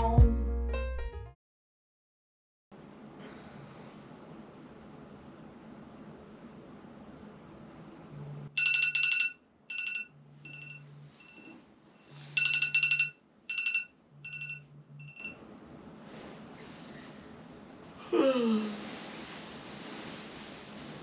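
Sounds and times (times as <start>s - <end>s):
phone ringtone chiming melody: 8.6s - 11.4s, 12.1s - 15.4s.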